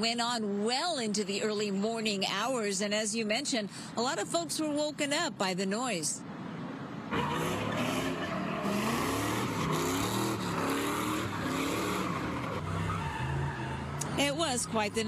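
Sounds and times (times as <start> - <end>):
tyres screeching on asphalt: 7.0 - 15.0
truck engine revving: 7.1 - 15.0.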